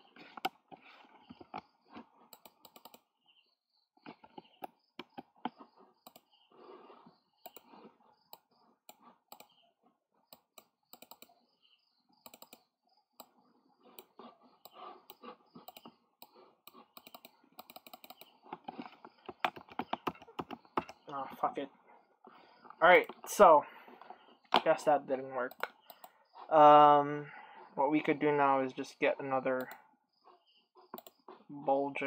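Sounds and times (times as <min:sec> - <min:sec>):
mouse clicking: 0:00.2 - 0:00.6, 0:02.3 - 0:03.1, 0:04.0 - 0:06.5, 0:07.4 - 0:09.6, 0:10.3 - 0:11.4, 0:12.2 - 0:21.2, 0:25.5 - 0:26.2, 0:29.6 - 0:29.8, 0:30.9 - 0:31.2
computer keyboard typing: 0:02.3 - 0:03.1, 0:04.1 - 0:06.3, 0:07.4 - 0:09.6, 0:10.3 - 0:11.4, 0:12.2 - 0:21.1, 0:25.5 - 0:26.1, 0:31.0 - 0:31.2.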